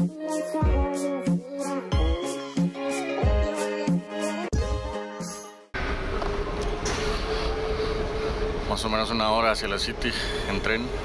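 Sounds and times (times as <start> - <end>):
background music: 0.0 - 5.8
steady hum tone: 5.8 - 11.0
train platform noise: 5.8 - 11.0.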